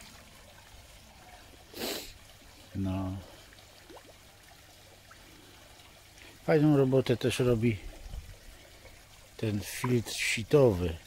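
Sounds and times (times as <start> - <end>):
water trickling in a pond: 0.0 - 11.0.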